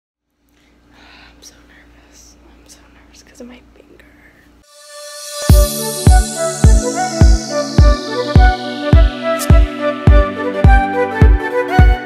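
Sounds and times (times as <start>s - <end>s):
steady hum: 0.5s - 12.0s
faint whispering: 1.3s - 4.5s.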